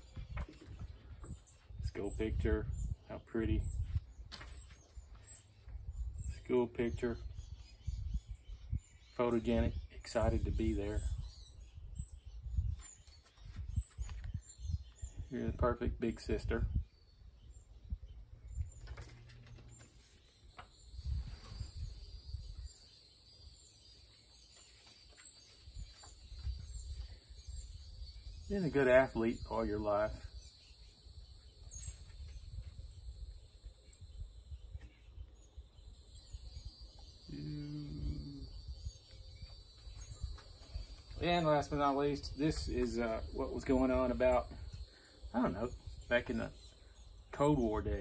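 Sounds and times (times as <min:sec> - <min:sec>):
small birds chirping: 0:00.0 - 0:48.0
high insect drone: 0:20.7 - 0:25.2, 0:35.7 - 0:47.2
low rumble on microphone: 0:25.7 - 0:43.6.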